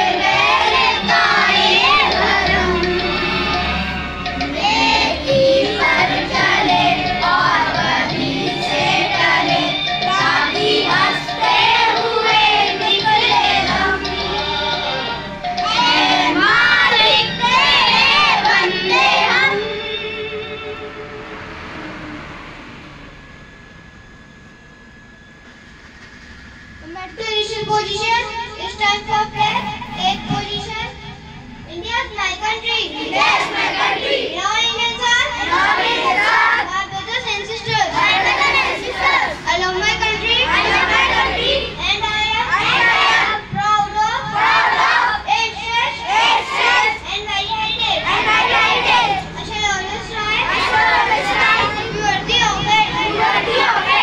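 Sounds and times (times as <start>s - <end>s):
children praying in unison: 0.0s - 22.0s, 26.8s - 54.0s
faint steady whine: 0.0s - 54.0s.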